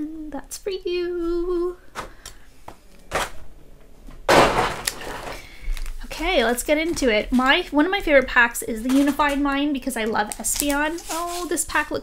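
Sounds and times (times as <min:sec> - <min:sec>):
plastic tray rustling: 0:04.3 - 0:11.8.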